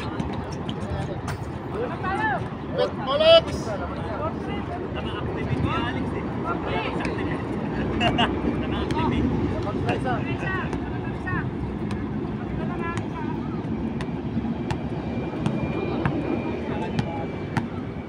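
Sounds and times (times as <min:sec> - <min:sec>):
scattered voices: 0:00.0 - 0:14.3
low traffic rumble: 0:00.0 - 0:18.0.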